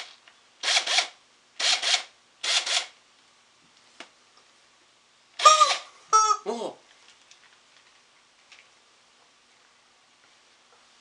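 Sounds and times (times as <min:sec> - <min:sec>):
rubber chicken squawks: 0:05.4 - 0:06.5.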